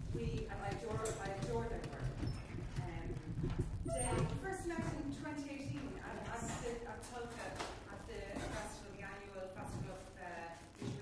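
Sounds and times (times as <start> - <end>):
light knocks and clatter: 0.0 - 8.8.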